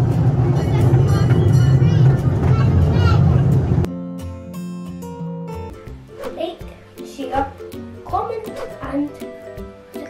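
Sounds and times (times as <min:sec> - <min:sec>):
miniature train rumbling: 0:00.0 - 0:03.9
music with clear notes: 0:00.0 - 0:10.0.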